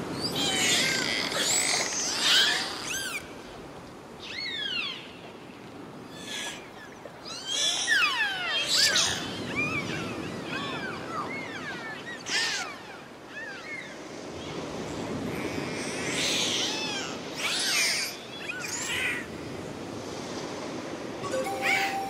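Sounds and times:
ocean noise: 18.4s - 22.0s.

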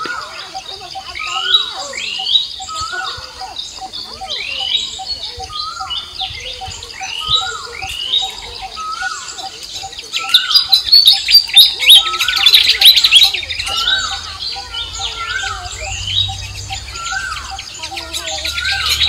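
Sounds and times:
bird call rising and falling: 0.0s - 19.0s
birds singing in chorus: 0.0s - 19.0s
rapid bird chattering: 0.0s - 19.0s.

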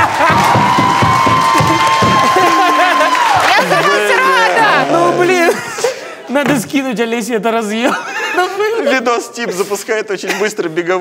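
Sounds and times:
people talking excitedly: 1.6s - 10.1s.

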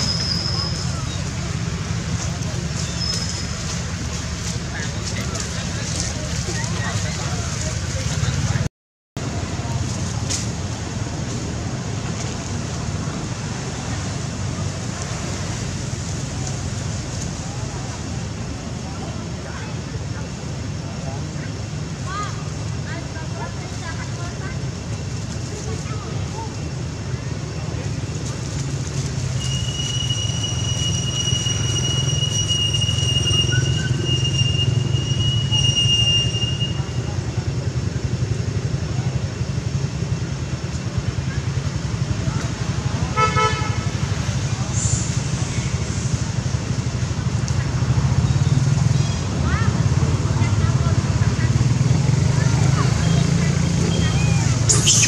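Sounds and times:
low rumble of distant traffic: 0.0s - 55.0s.

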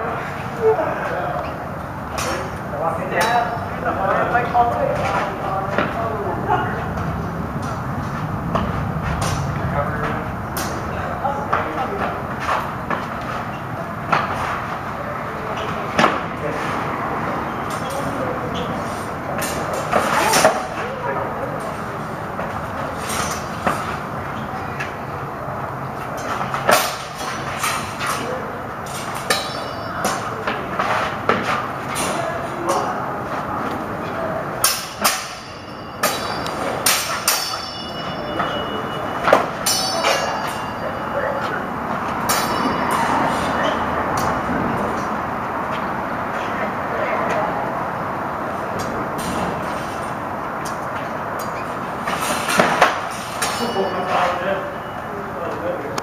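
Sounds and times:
steady background noise: 0.0s - 56.0s
sword blades clashing: 28.9s - 30.3s, 34.6s - 38.6s, 39.2s - 41.1s, 42.3s - 43.6s, 52.2s - 54.4s
wooden swords clacking: 28.9s - 30.6s, 34.6s - 37.7s.

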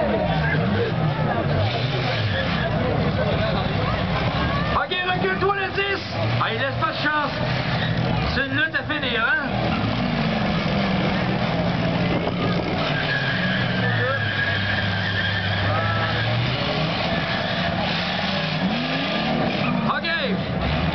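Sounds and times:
car engines revving: 0.0s - 20.9s
crowd voices: 0.0s - 20.9s.

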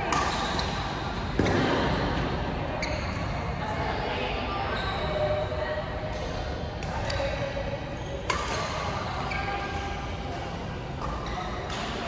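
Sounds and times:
sports hall hubbub: 0.0s - 12.0s
racket hitting shuttlecock: 8.3s - 8.9s.

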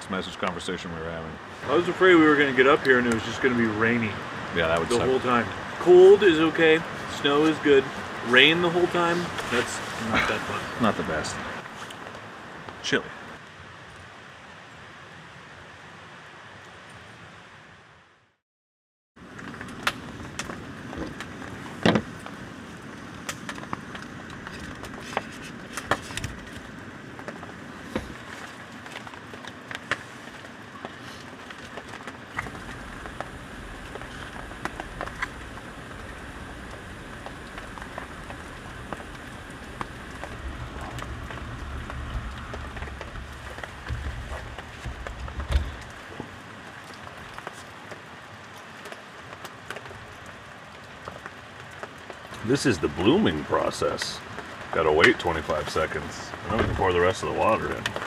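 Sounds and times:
rain pattering: 0.0s - 17.7s, 19.2s - 58.0s
camp gear clicks and knocks: 19.5s - 22.4s, 23.2s - 46.3s
gas burner rumble: 32.3s - 46.2s.

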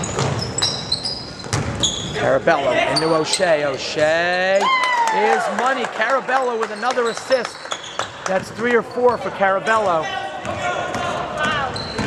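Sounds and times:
shoes squeaking on gym floor: 0.0s - 4.6s, 6.6s - 9.8s, 10.6s - 12.0s.

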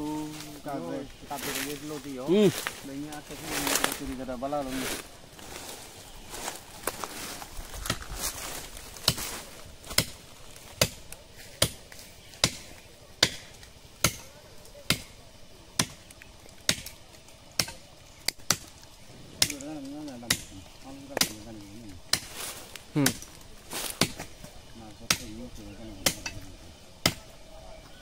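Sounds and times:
blade chopping tree trunk: 11.6s - 11.8s, 12.4s - 14.3s, 14.9s - 15.2s, 17.6s - 18.8s, 23.9s - 24.3s, 27.0s - 27.3s.

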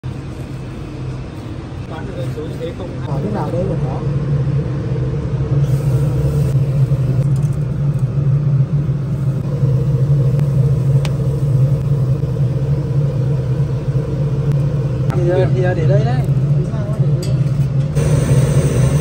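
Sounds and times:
motor humming: 18.0s - 19.0s.

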